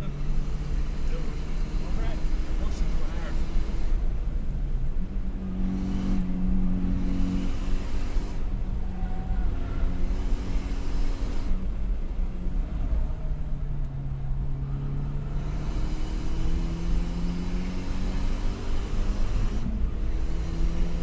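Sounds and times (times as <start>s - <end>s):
car engine revving and shifting: 0.0s - 21.0s
low road rumble: 0.0s - 21.0s.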